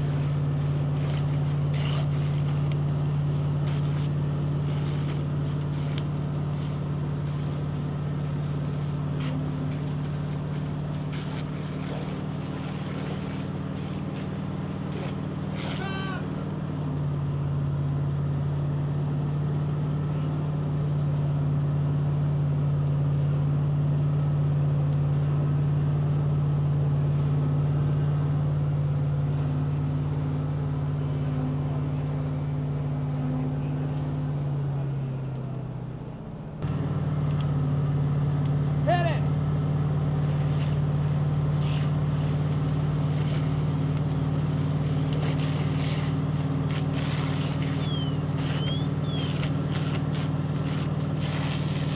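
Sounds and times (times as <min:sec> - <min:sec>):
hose water flowing: 0:00.0 - 0:16.4, 0:40.0 - 0:51.9
pump engine droning: 0:00.0 - 0:51.9
person calling out: 0:15.6 - 0:16.4, 0:38.8 - 0:39.3.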